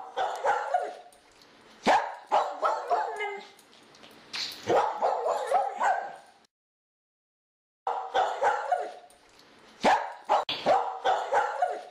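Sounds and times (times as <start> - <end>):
dog barking and yelping: 0.0 - 1.1, 1.8 - 3.6, 4.6 - 6.3, 7.9 - 9.1, 9.8 - 11.9.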